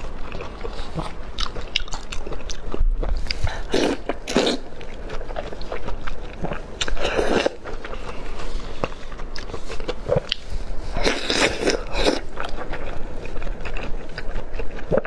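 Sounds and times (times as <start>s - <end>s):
chewing: 0.0s - 15.0s.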